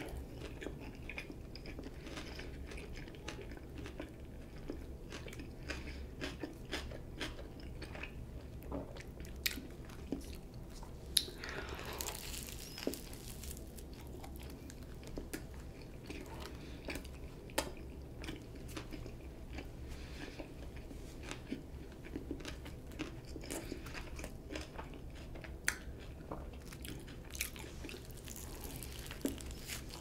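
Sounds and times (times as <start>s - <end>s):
chewing with crunches: 0.0s - 30.0s.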